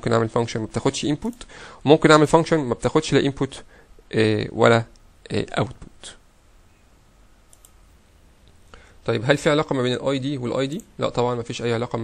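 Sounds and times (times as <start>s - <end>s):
faint computer mouse clicks: 7.5s - 7.8s.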